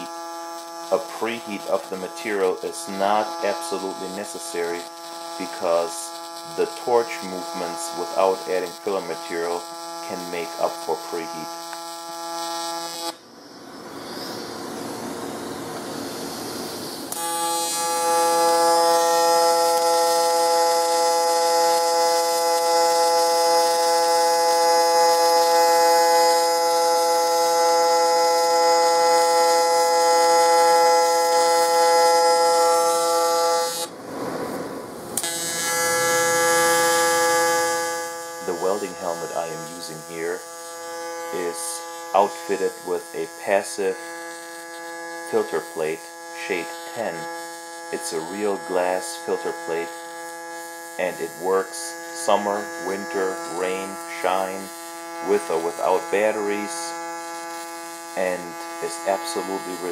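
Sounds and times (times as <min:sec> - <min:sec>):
arc welding buzz: 0:00.0 - 0:59.9.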